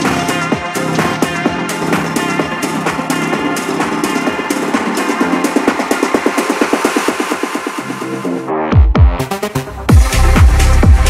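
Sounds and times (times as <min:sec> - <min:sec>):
dance music synths: 0:00.0 - 0:11.0.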